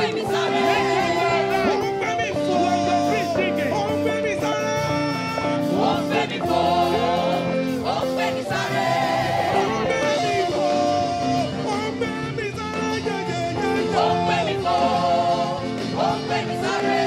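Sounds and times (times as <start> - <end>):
choir singing gospel song: 0.0 - 17.0
instrumental backing: 0.0 - 17.0.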